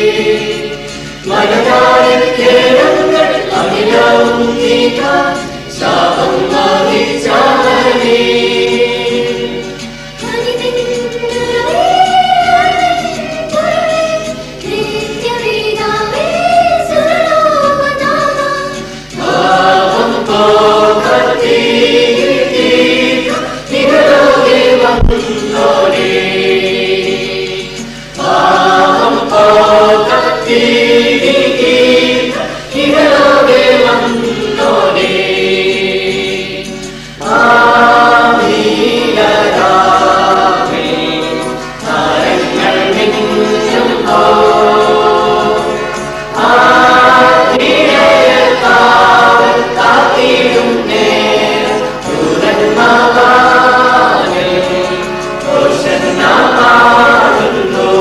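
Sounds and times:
choir singing a carol: 0:00.0 - 0:58.0.

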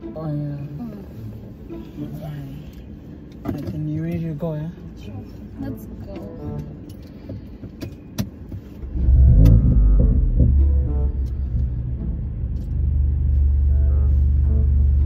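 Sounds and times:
car engine revving and rumbling: 0:00.0 - 0:15.0.

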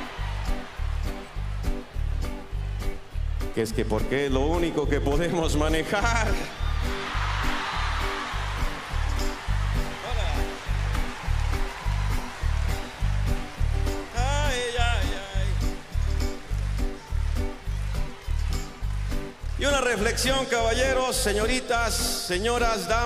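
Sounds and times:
crowd laughing and cheering: 0:00.0 - 0:03.5, 0:05.8 - 0:22.0
live band with steady bass beat: 0:08.0 - 0:23.0.

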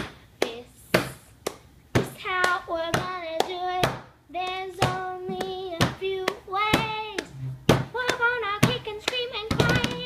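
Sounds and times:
sharp handclaps: 0:00.0 - 0:10.0.

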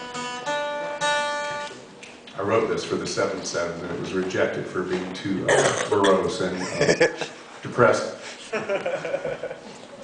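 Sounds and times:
acoustic guitar plucked: 0:00.0 - 0:01.7.

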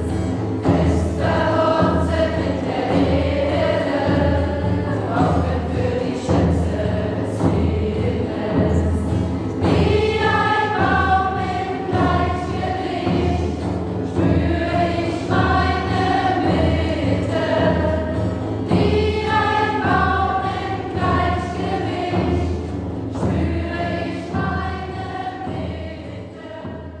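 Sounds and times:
acoustic guitar: 0:00.0 - 0:27.0
frame drum beat: 0:00.0 - 0:27.0
group chanting together: 0:00.0 - 0:27.0.

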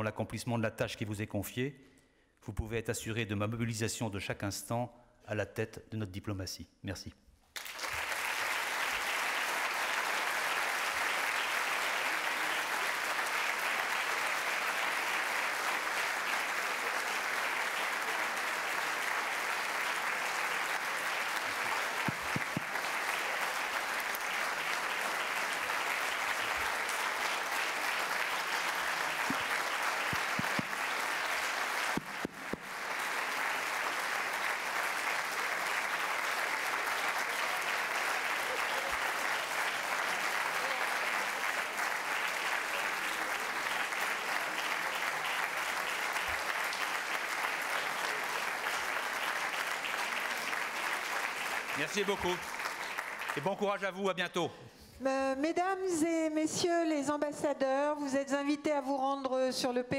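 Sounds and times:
audience applauding: 0:07.6 - 0:54.1.

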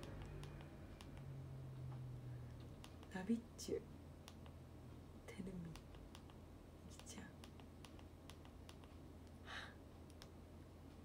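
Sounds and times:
soft whisper: 0:06.8 - 0:07.5.

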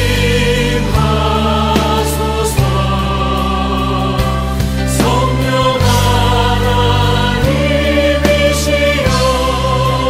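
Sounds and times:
sustained chords: 0:00.0 - 0:10.0
voices singing worship song: 0:00.0 - 0:10.0.

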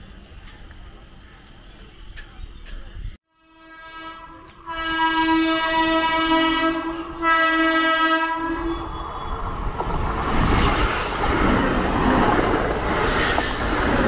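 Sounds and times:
train horn blasts: 0:03.3 - 0:09.3.

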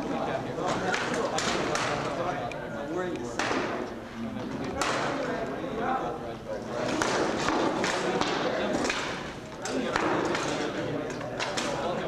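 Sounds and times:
voices in echoing hall: 0:00.0 - 0:12.0.

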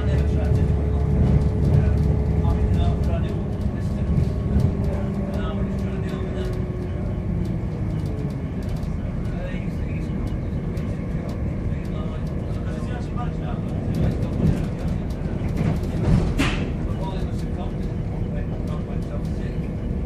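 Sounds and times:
train running rumble: 0:00.0 - 0:20.0.

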